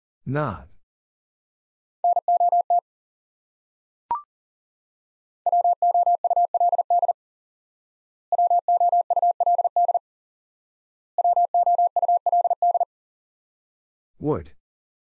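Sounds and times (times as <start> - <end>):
morse code tone: 5.5 - 7.2, 8.3 - 10.0, 11.2 - 12.9.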